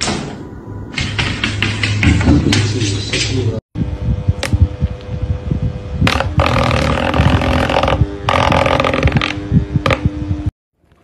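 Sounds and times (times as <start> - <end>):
rushes of air noise: 3.8 - 10.5
electric desk fan running: 3.8 - 11.0.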